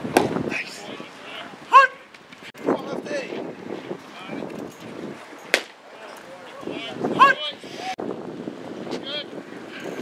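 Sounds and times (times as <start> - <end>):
wind noise on microphone: 0.0 - 10.0
people calling out: 0.5 - 2.1, 5.9 - 8.0
sharp crack: 5.5 - 5.8.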